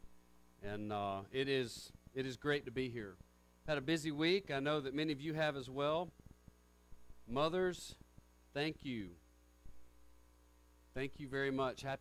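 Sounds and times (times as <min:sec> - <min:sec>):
electrical mains hum: 0:00.0 - 0:12.0
man speaking: 0:00.6 - 0:06.1, 0:07.3 - 0:09.2, 0:11.0 - 0:12.0.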